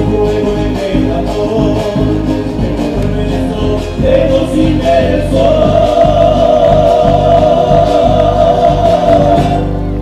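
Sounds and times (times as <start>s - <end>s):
men singing in harmony: 0.0s - 9.7s
guitars: 0.0s - 10.0s.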